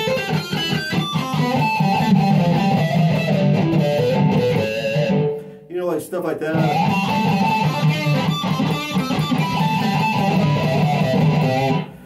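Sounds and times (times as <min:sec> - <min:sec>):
electric guitar with squealing harmonics: 0:00.0 - 0:05.6, 0:06.6 - 0:12.0.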